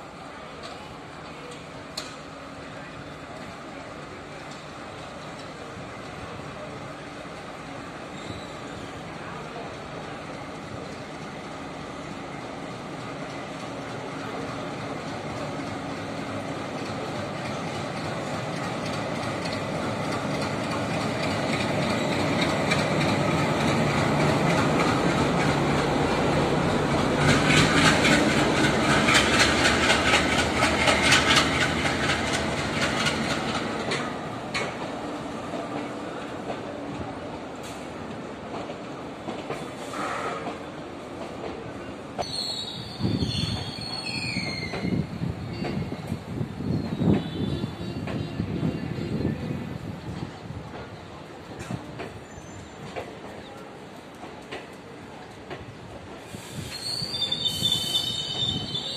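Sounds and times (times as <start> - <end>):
train rolling noise: 0.0 - 58.9
diesel locomotive engine drone: 8.8 - 37.9
wheels clacking over rail joints: 12.8 - 36.7.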